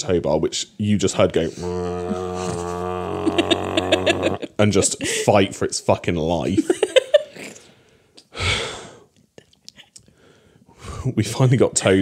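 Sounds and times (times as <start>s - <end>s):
person laughing: 1.5s - 5.5s
person imitating a droning motor: 1.6s - 4.5s.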